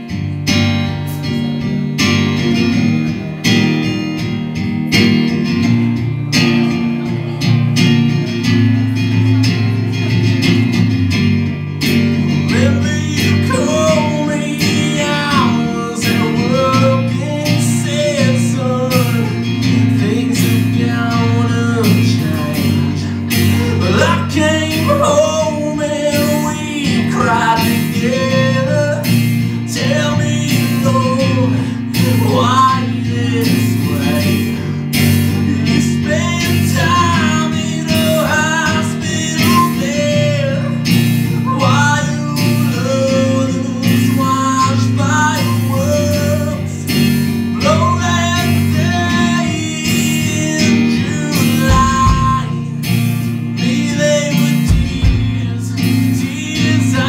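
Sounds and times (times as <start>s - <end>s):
acoustic guitar strumming: 0.0s - 57.0s
man singing: 1.1s - 57.0s
drum kit: 45.4s - 56.8s.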